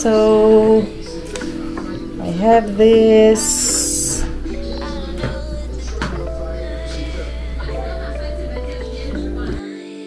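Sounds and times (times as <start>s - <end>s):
song with guitar: 0.0s - 9.6s.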